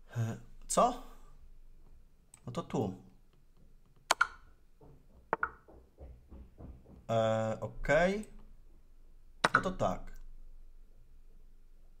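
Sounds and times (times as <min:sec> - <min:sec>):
sharp double clicks: 0:04.1 - 0:04.5.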